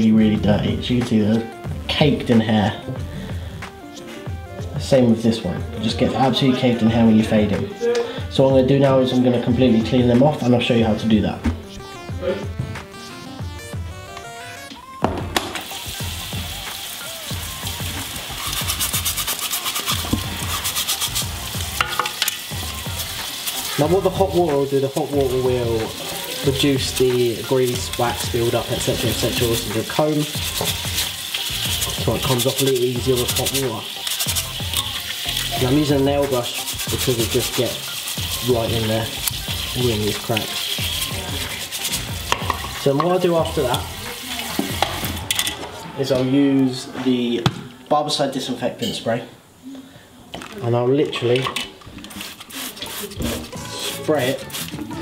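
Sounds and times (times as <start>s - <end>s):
water spraying onto plastic: 15.5s - 45.5s, 52.1s - 54.8s
brush scrubbing comb teeth: 17.5s - 21.8s, 22.4s - 45.2s, 52.1s - 54.8s.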